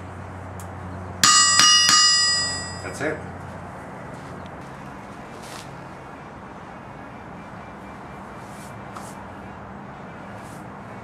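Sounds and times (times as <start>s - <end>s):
anvil ringing: 1.2s - 3.0s
hammer striking anvil: 1.2s - 3.0s.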